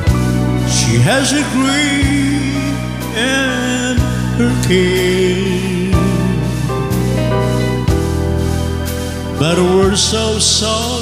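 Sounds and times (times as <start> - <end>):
electronic keyboard chords: 0.0 - 11.0.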